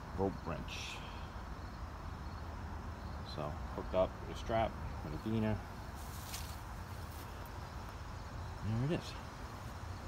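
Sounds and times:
footsteps swishing through grass: 5.9 - 7.5.

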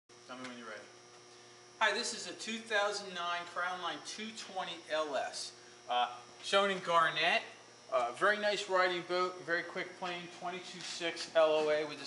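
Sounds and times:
low electrical hum: 0.1 - 12.0.

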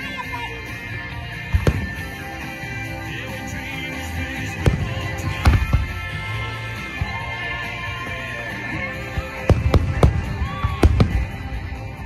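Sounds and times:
fireworks bursting: 1.4 - 2.6, 4.4 - 7.2, 9.0 - 12.0.

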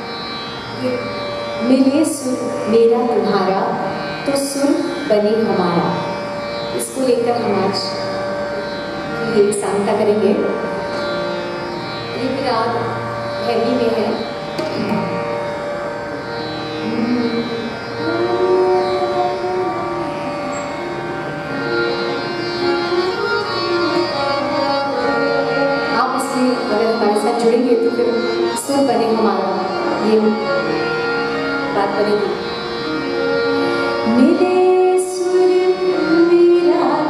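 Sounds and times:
harmonium drone: 0.0 - 37.0
tabla strokes: 14.5 - 15.5.

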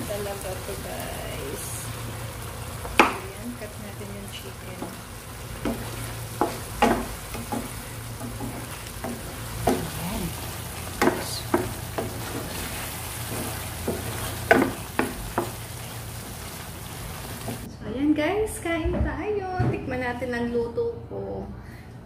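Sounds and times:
sauce simmering sizzle: 0.0 - 17.7
steady low hum: 0.0 - 18.0
spoon scraping and knocking pan: 4.7 - 16.6.

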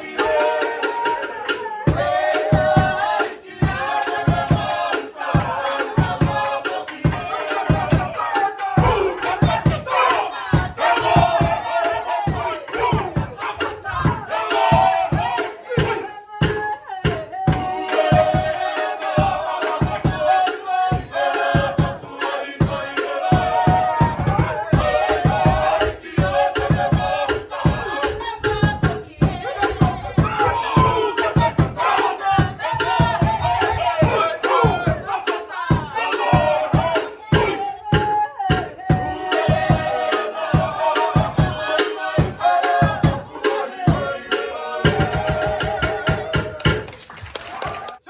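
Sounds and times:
group shouting a chant: 0.0 - 46.9.

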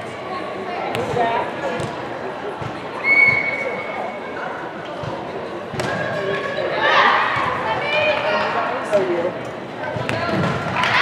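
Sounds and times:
referee's whistle: 3.0 - 3.9.

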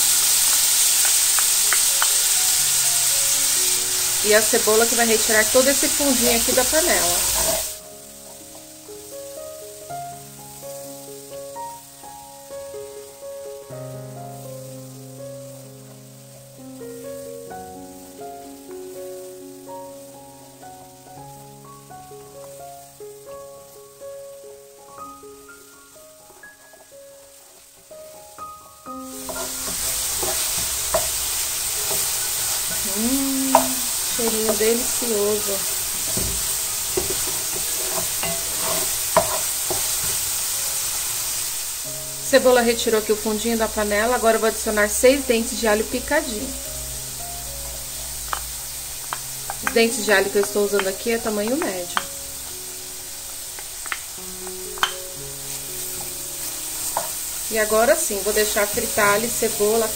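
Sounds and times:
onion sizzling in fat: 0.0 - 59.9
background music melody: 0.4 - 59.9
wooden spoon scraping a pot: 6.6 - 7.8, 29.2 - 40.3.

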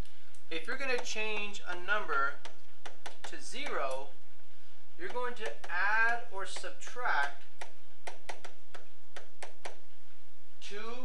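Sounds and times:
low electrical hum: 0.0 - 11.0
stylus tapping touchscreen: 0.9 - 4.1, 5.0 - 9.9.

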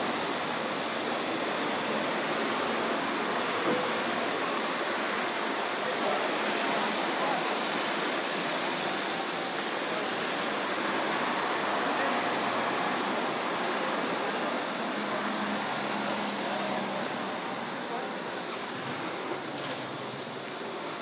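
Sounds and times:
road traffic noise: 0.0 - 21.0.

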